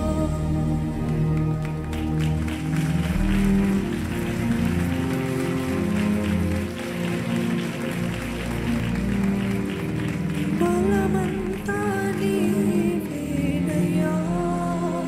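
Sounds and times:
live worship music: 0.0s - 15.0s
audience applauding: 0.9s - 13.3s.

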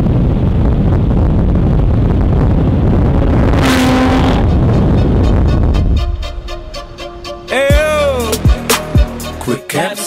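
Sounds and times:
road and wind rush: 0.0s - 8.4s
loud car engine: 0.8s - 5.7s
short pitched note: 3.5s - 8.4s.

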